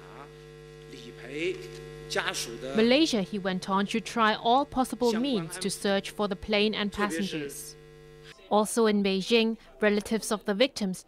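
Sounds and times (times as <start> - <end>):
electrical mains hum: 0.0 - 10.4.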